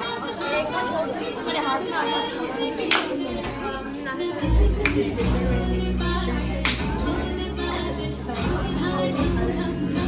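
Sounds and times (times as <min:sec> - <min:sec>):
chatter of many guests: 0:00.0 - 0:10.0.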